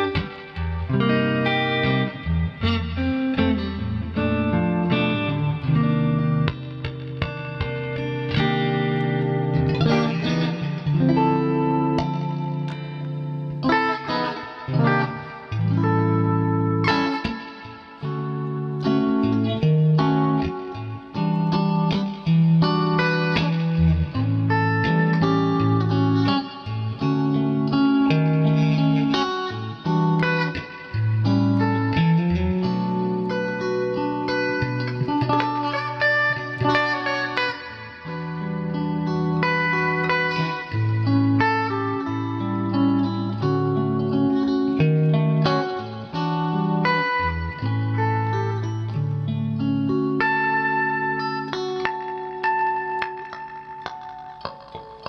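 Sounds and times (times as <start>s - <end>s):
electric guitar chords and notes: 0.0s - 55.0s.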